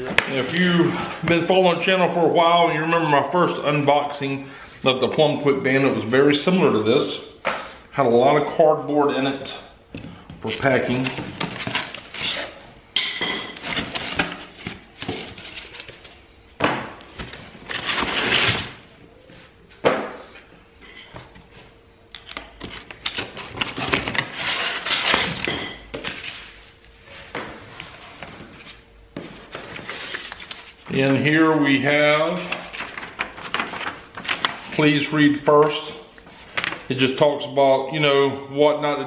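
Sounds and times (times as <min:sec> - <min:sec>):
cardboard scraping and tearing: 0:17.6 - 0:18.8, 0:23.2 - 0:25.5.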